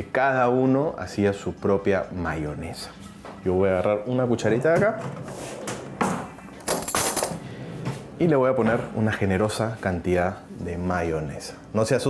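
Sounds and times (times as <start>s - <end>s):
cutlery clinking in drawer: 6.6s - 7.4s.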